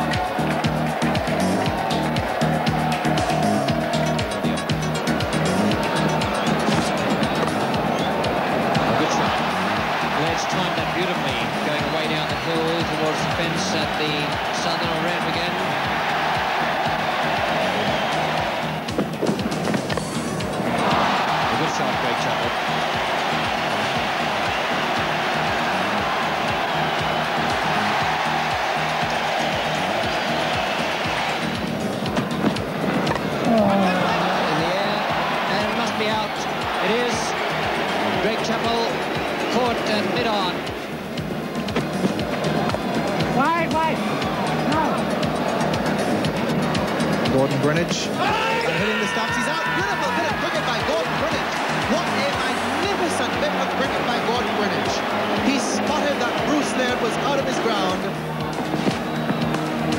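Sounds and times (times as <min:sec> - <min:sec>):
music: 0:00.0 - 0:59.9
stadium crowd cheering and singing: 0:00.0 - 0:59.9.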